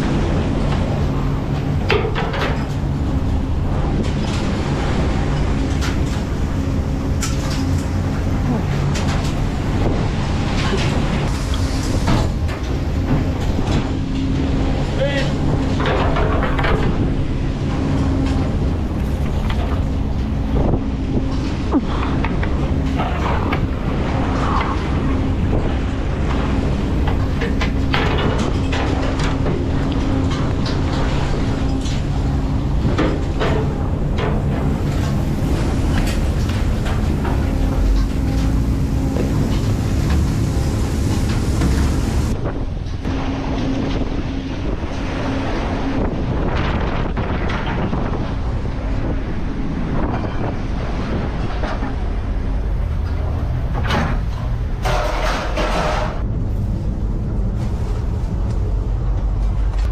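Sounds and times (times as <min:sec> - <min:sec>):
wind buffeting microphone: 0:00.0 - 0:54.9
boat engine and deck machinery: 0:00.0 - 0:59.9.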